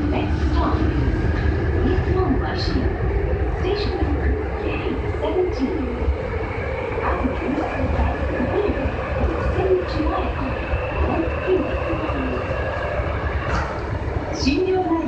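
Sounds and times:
train wheels rumbling on rails: 0.0 - 15.0.

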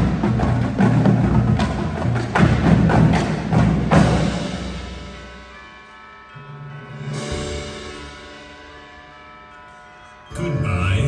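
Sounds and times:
sustained ringing chord: 4.6 - 11.0.

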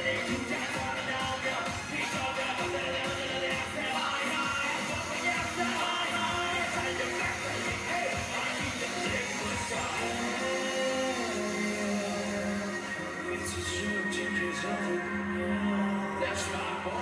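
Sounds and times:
live electronic dance-pop song: 0.0 - 17.0.

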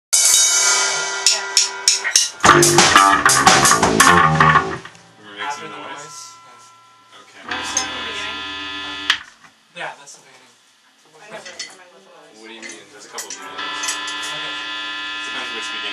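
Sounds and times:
drum hits: 0.2 - 5.1
rock band playing: 0.2 - 5.2
ringing guitar chords: 0.6 - 9.4, 13.4 - 15.9.

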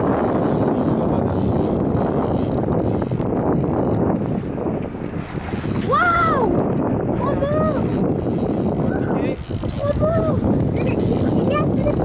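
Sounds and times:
sea washing around boat: 0.0 - 12.0
wind noise on microphone: 0.0 - 12.0.

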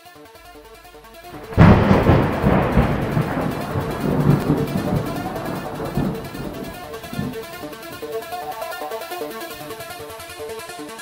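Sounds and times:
intro music: 0.5 - 10.8
thunder crack and rumble: 1.3 - 8.3.

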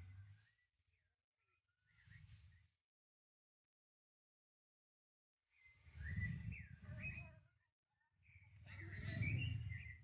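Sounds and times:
low wind rumble on microphone: 5.6 - 7.5, 8.2 - 10.0.

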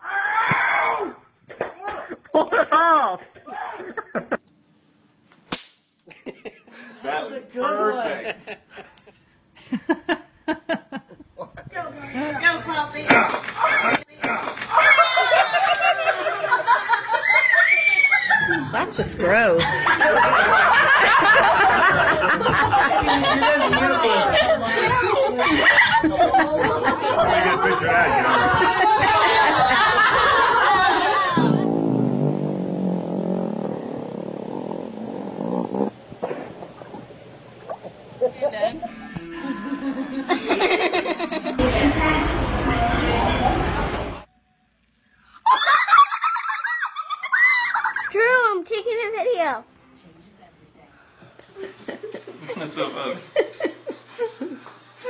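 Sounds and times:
sharp crack: 5.5 - 6.0, 36.2 - 36.8.

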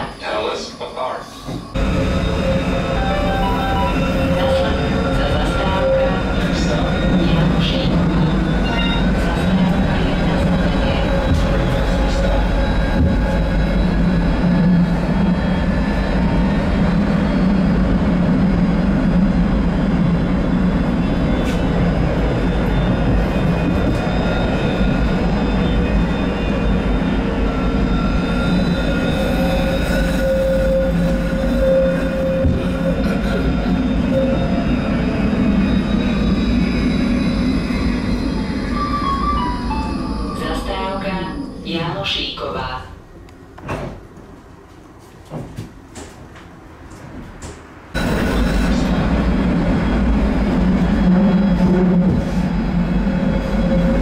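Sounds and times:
tram wheels rumbling on rails: 0.0 - 54.0.

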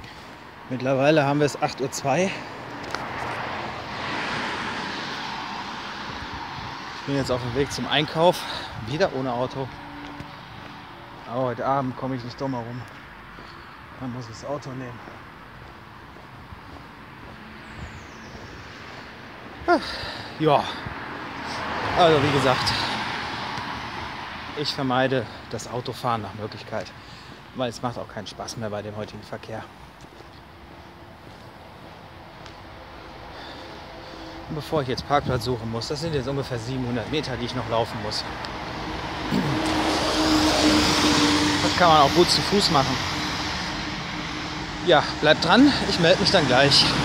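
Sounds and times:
vehicle passing: 0.0 - 27.5, 30.5 - 47.0
road traffic: 0.0 - 47.0.

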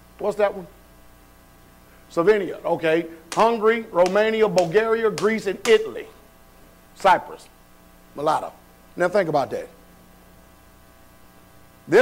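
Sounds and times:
low electrical hum: 0.0 - 12.0
man talking: 0.2 - 0.8, 2.1 - 6.2, 7.0 - 7.5, 8.2 - 9.8.

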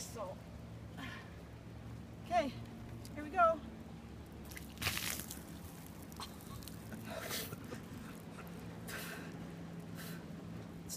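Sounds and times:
water splashing over person: 4.4 - 6.9.

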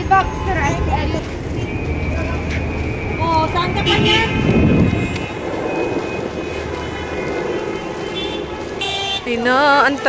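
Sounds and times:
heavy traffic rumble: 0.0 - 10.0.

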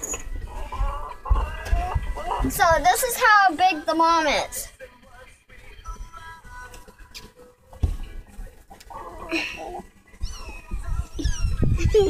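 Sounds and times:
kittens mewing: 8.9 - 12.0.

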